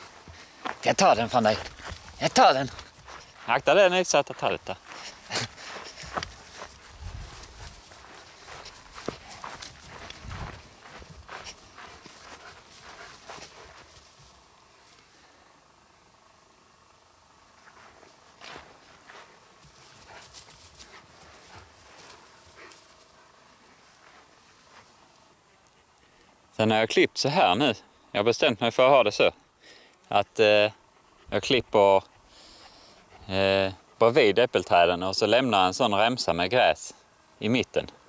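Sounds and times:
paw steps on grass: 0.0s - 14.4s
scuffling: 0.0s - 15.0s.

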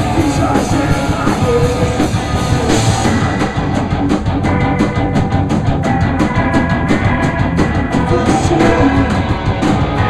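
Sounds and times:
drum and cymbal beat: 0.0s - 10.0s
live rock band playing: 0.0s - 10.0s
sustained guitar chords: 0.0s - 10.0s.

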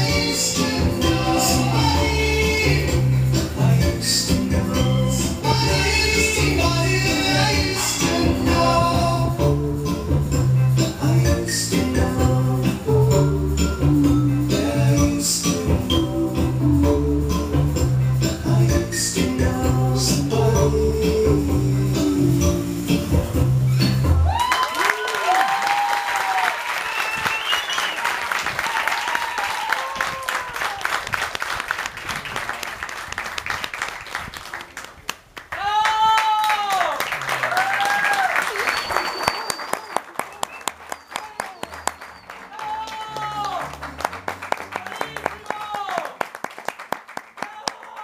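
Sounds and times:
music: 0.0s - 24.4s, 41.7s - 45.8s
whoops and cheers: 24.2s - 31.1s, 35.5s - 43.7s, 44.8s - 46.2s, 47.4s - 48.0s
audience applauding: 24.3s - 48.0s.

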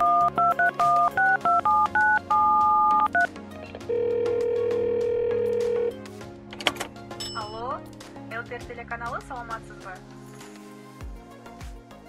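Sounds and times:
keypad dialing beeps: 0.0s - 3.3s
phone ringing tone: 0.0s - 6.0s.

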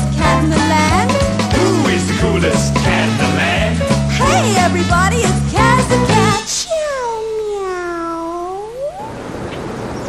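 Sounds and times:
cat meowing: 6.4s - 9.2s.

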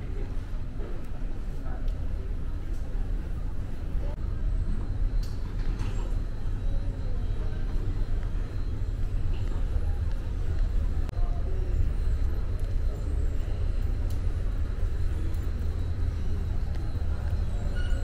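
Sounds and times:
faint voices: 0.0s - 18.0s
steady low rumble: 0.0s - 18.0s.

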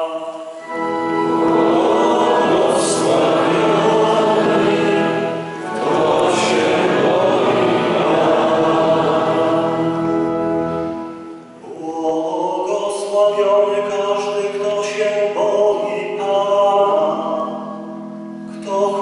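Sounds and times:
organ-like tones: 0.0s - 12.0s
church choir singing: 0.0s - 19.0s.

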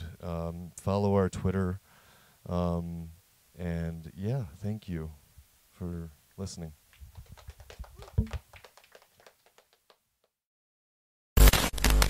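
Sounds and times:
small audience applauding: 6.9s - 10.0s.

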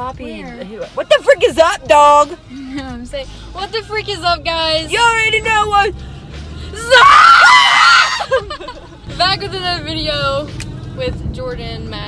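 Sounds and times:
young woman screaming excitedly: 6.8s - 8.5s.

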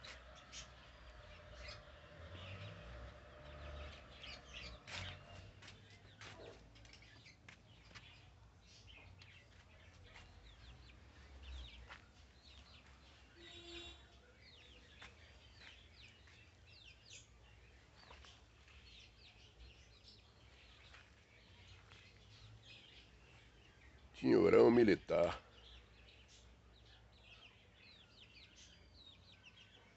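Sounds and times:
faint birds chirping: 0.0s - 29.9s
fuller pitched bird call: 13.3s - 14.8s.

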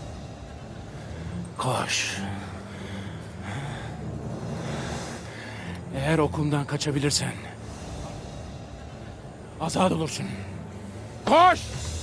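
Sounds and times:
faint breaths: 0.0s - 5.9s, 7.2s - 11.2s
low dramatic music drone: 0.0s - 12.0s.

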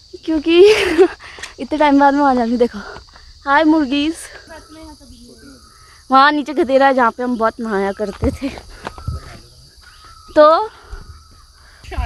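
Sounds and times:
high-pitched insect drone: 0.0s - 12.0s.

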